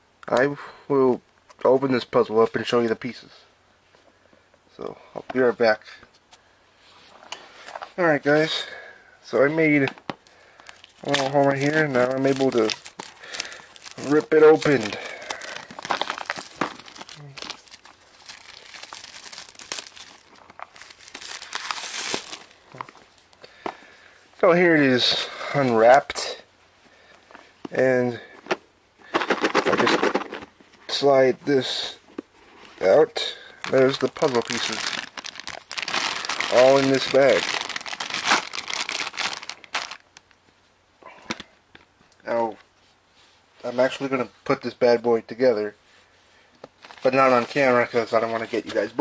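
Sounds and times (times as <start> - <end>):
plastic film crinkling: 10.2 - 23.5, 33.6 - 40.4, 46.8 - 49.0.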